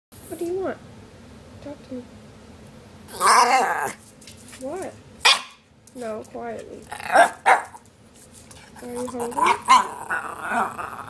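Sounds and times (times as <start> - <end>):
dog vocal call: 9.0 - 11.0.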